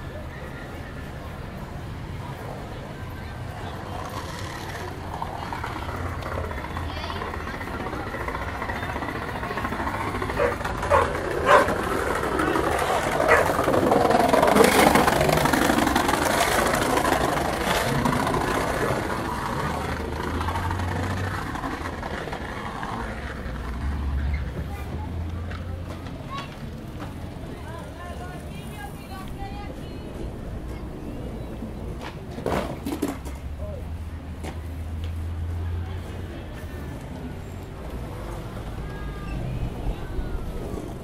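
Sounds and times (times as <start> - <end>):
many people talking: 0.0 - 41.0
traffic rumbling: 0.0 - 41.0.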